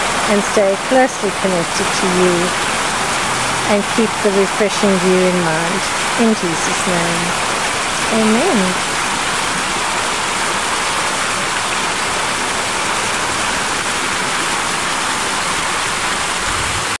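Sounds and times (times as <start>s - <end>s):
fountain water splashing: 0.0s - 17.0s.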